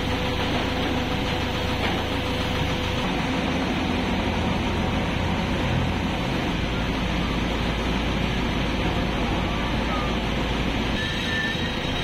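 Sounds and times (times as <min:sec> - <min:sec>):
drill rig machine hum: 0:00.0 - 0:12.0.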